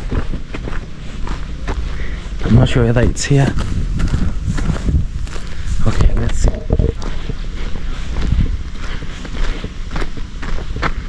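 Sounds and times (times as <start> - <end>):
footsteps on dirt road: 0.0 - 11.0.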